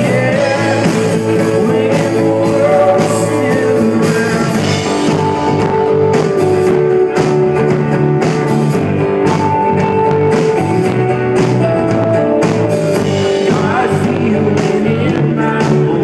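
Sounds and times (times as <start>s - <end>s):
drums: 0.0s - 16.0s
electric guitar: 0.0s - 16.0s.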